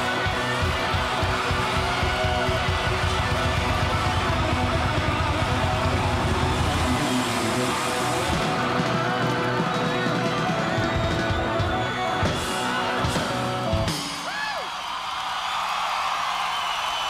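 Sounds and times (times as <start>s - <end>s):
fast dense drumming: 0.0s - 11.6s
electric guitar: 0.0s - 14.3s.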